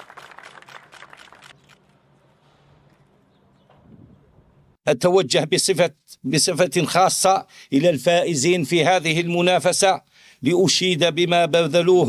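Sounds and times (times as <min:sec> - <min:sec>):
camera shutters clicking: 0:01.1 - 0:01.9.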